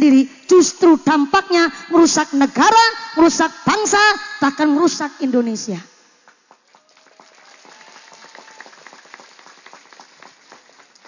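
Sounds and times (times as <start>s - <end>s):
audience clapping: 6.3s - 11.0s.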